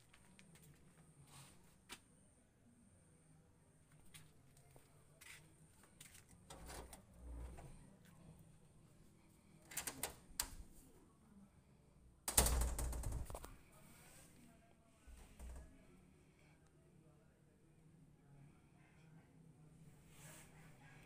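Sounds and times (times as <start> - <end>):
wooden door opening: 9.7 - 10.7, 12.3 - 13.6, 15.1 - 15.8.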